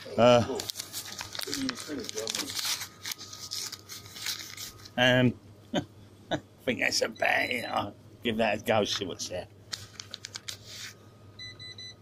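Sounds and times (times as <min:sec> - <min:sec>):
scratchcards clicking and rustling: 0:00.5 - 0:05.0, 0:09.7 - 0:11.0.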